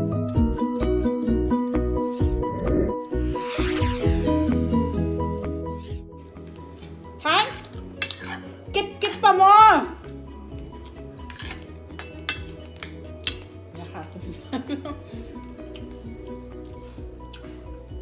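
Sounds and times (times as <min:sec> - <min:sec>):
quiet background music: 0:00.0 - 0:18.0
metal spoon clinking on dishes: 0:07.4 - 0:08.6, 0:11.2 - 0:13.6.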